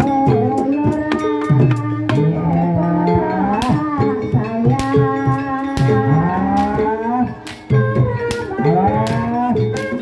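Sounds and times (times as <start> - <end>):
drum strikes: 0.0 - 10.0
steady gamelan tone: 0.0 - 10.0.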